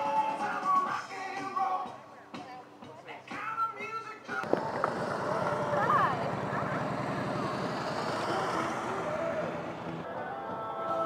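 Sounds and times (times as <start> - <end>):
voices: 1.4 - 11.0
motorcycle engines passing: 4.4 - 10.2.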